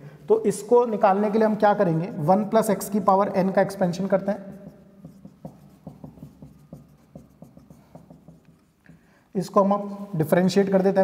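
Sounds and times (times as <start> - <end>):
marker writing on whiteboard: 2.8 - 9.2.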